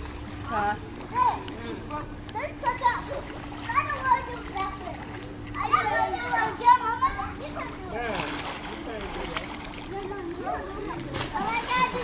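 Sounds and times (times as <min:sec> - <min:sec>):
water splashing in a pool: 0:00.0 - 0:12.0.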